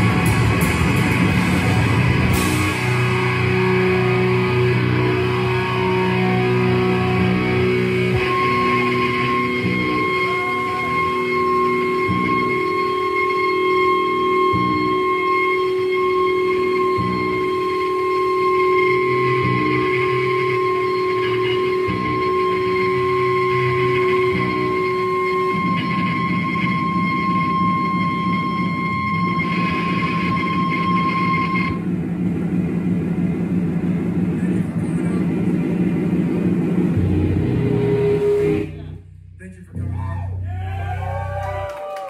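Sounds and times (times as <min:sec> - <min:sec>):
distorted guitar chords: 0:00.0 - 0:41.7
high ringing tone: 0:03.8 - 0:31.8.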